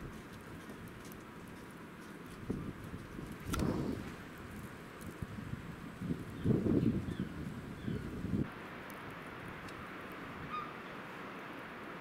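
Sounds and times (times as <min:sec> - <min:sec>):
snowstorm wind: 0:00.0 - 0:12.0
wind gust buffeting microphone: 0:02.4 - 0:08.5.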